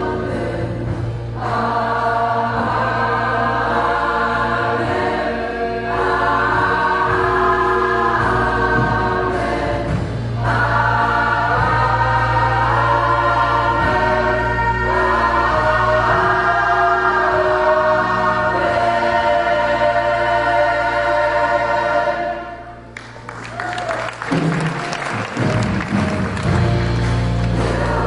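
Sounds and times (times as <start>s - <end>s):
gospel choir singing: 0.0s - 22.9s, 26.1s - 28.0s
bass notes: 0.0s - 23.3s, 24.2s - 28.0s.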